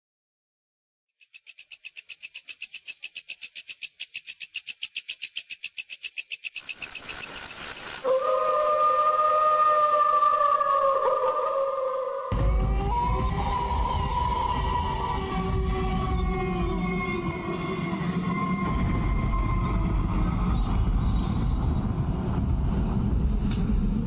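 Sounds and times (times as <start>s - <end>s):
high-pitched pulsing chirr: 1.2s - 22.0s
drone with wavering tones: 6.6s - 22.5s.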